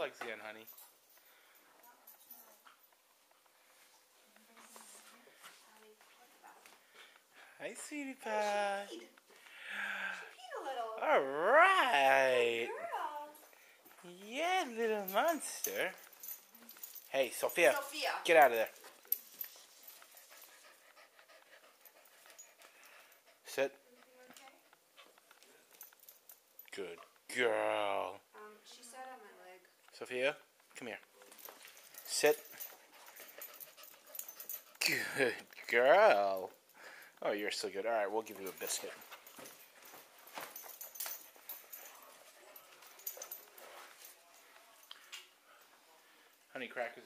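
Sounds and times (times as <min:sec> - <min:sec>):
puppy panting: 0:18.6 - 0:26.4, 0:31.4 - 0:35.8.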